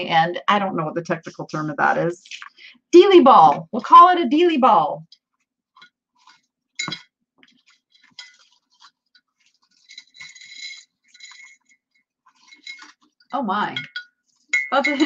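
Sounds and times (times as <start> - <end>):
metal jewelry clinking: 9.8 - 12.9.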